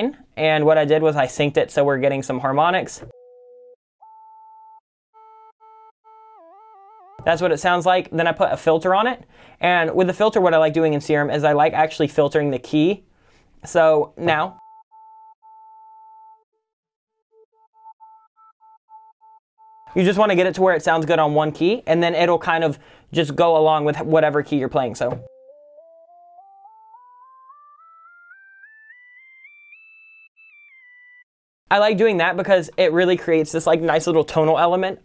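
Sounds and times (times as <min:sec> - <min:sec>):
synthesizer lead tone: 0:03.1 - 0:07.3, 0:25.2 - 0:31.2.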